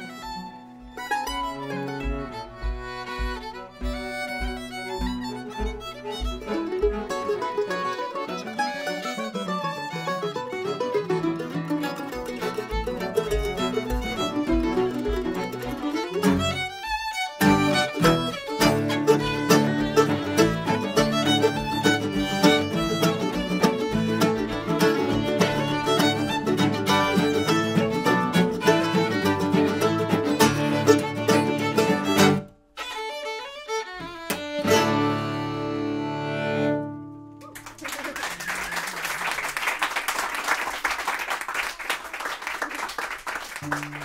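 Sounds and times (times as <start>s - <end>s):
string band playing: 0.0s - 38.1s, 43.3s - 44.0s
audience applauding: 37.4s - 44.0s.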